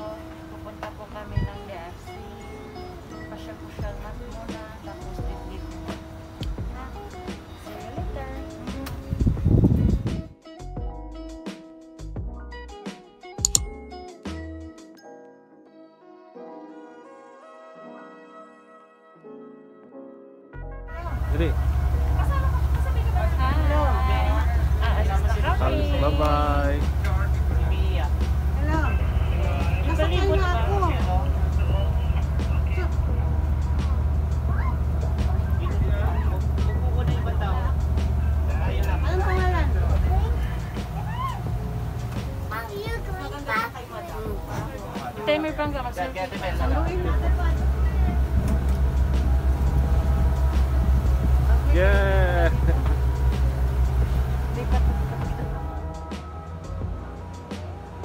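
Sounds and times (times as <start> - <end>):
boat engine drone: 21.0 - 58.0
person speaking: 21.1 - 34.0.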